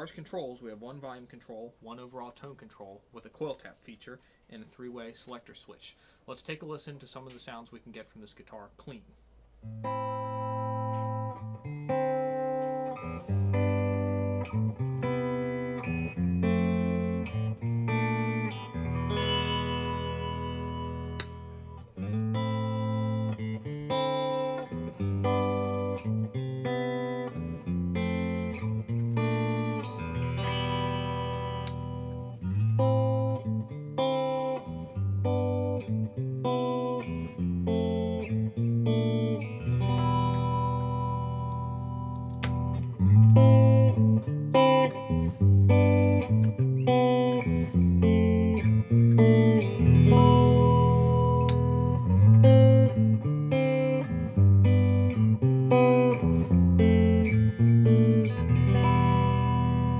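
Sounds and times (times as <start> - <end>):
clean electric guitar playing: 9.6 - 59.9.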